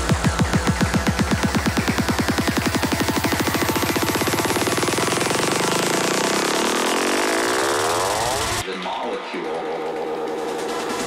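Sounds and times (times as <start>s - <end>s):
kick and bassline: 0.0s - 8.6s
rising synth sweep: 0.0s - 8.6s.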